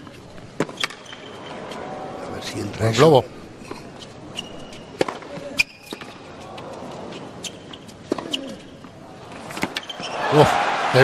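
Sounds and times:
shoe squeaks: 0:00.7 - 0:01.6, 0:04.0 - 0:06.3, 0:07.2 - 0:08.9, 0:09.8 - 0:10.3
arena crowd noise: 0:01.3 - 0:03.5, 0:06.2 - 0:07.4, 0:08.2 - 0:11.0.

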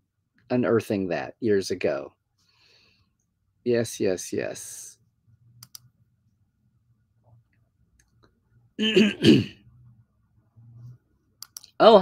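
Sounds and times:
man clearing his throat: 0:08.8 - 0:09.6.

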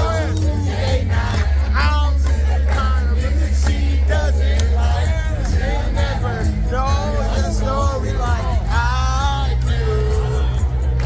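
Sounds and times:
loud music with deep bass: 0:00.0 - 0:11.0
voices: 0:00.0 - 0:11.0.

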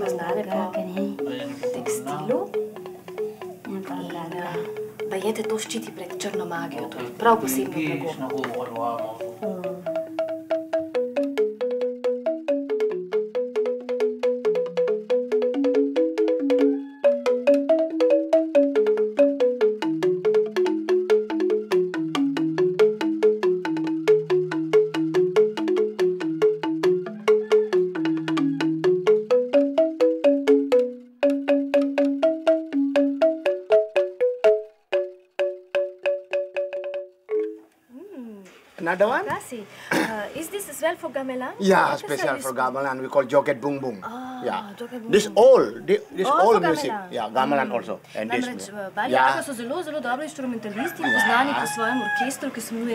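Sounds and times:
bamboo xylophone played with mallets: 0:00.0 - 0:38.4, 0:40.8 - 0:52.9.

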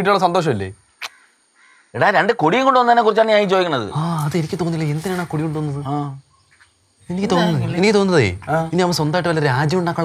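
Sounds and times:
man speaking: 0:07.1 - 0:10.0.

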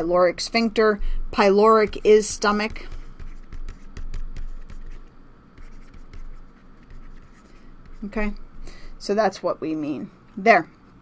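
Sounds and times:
stylus scratching on a tablet: 0:01.4 - 0:08.4.

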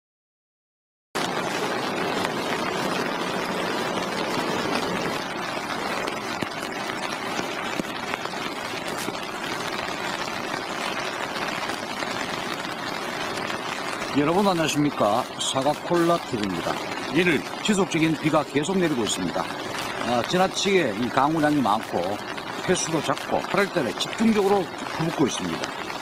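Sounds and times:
steady rain falling: 0:01.2 - 0:26.0.

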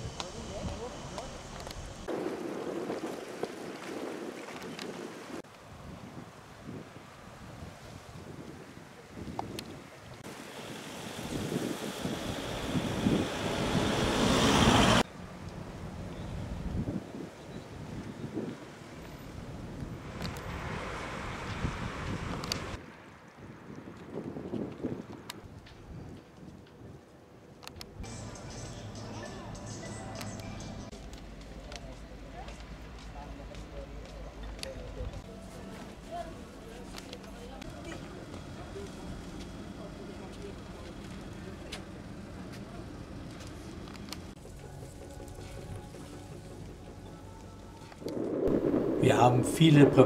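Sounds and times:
wind rushing over microphone: 0:00.0 - 0:10.3, 0:11.0 - 0:15.1, 0:16.0 - 0:27.0, 0:47.9 - 0:50.0.

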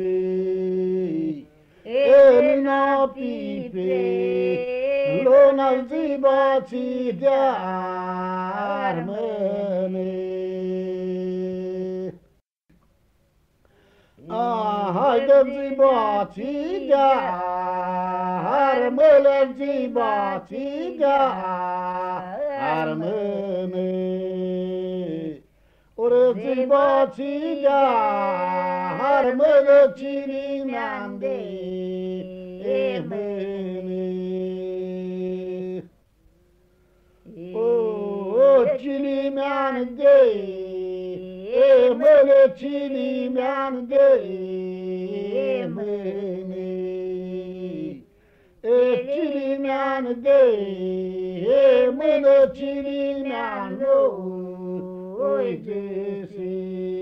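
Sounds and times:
faint recording hiss: 0:00.0 - 0:57.0
man singing long note: 0:14.2 - 0:25.4.

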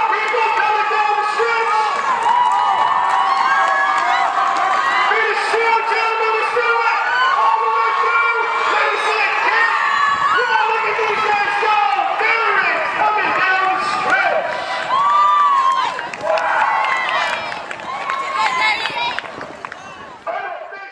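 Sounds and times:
crowd shouting and cheering: 0:00.0 - 0:20.9.

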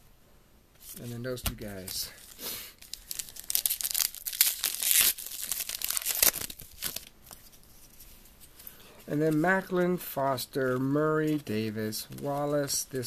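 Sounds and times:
plastic wrapper tearing and crinkling: 0:01.6 - 0:07.4.

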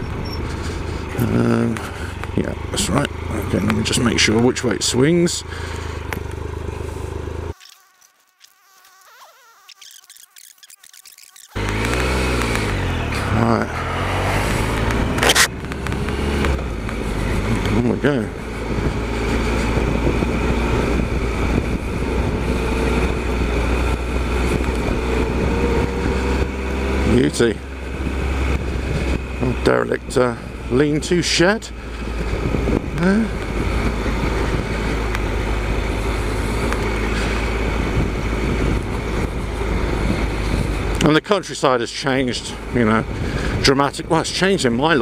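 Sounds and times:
motorcycle engine: 0:00.0 - 0:41.2.

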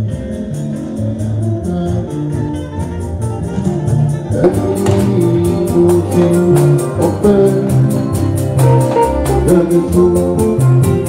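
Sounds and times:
bass line: 0:00.0 - 0:11.0
fast percussion beat: 0:00.0 - 0:11.0
live band music: 0:00.0 - 0:11.0.

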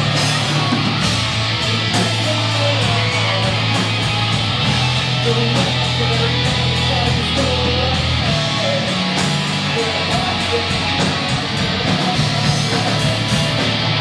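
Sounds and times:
drum kit with cymbals: 0:00.0 - 0:14.0
electric guitars and bass: 0:00.0 - 0:14.0.

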